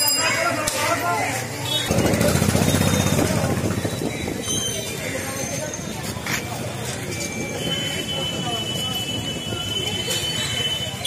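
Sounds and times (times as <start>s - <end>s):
crowd talking: 0.0s - 11.0s
street noise: 0.0s - 11.0s.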